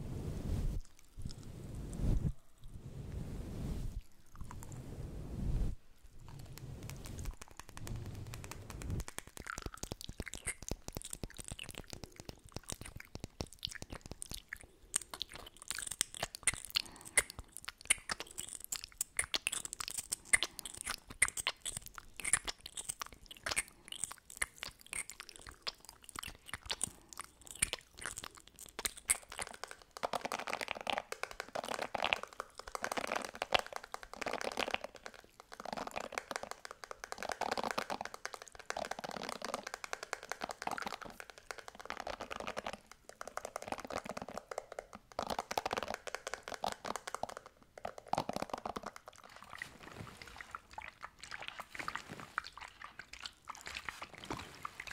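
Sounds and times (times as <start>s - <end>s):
hairbrush scratching microphone grille: 0.0s - 9.1s
mouth clicks: 6.2s - 49.3s.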